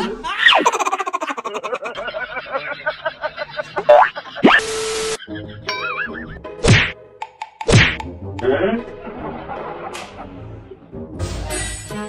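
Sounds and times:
cartoon whack sound effect: 6.6s - 7.0s, 7.7s - 8.0s.

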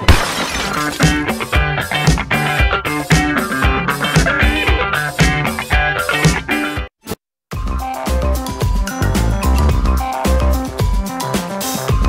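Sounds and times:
upbeat rock music: 0.8s - 6.9s, 7.6s - 12.0s.

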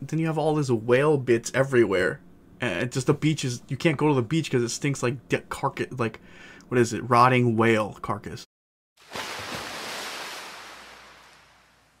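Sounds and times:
ocean surf: 9.1s - 12.0s.

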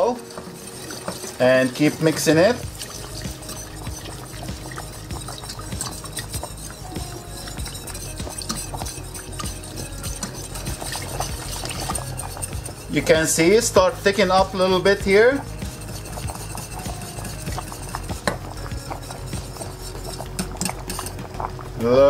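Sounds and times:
whisk clicking against a pan: 0.0s - 21.4s
milk pouring: 0.0s - 22.0s.

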